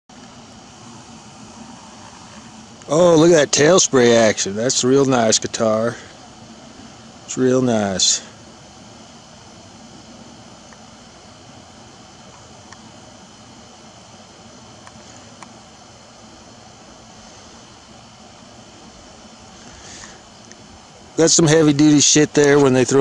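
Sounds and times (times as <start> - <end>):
steady background hiss: 0.1 - 23.0.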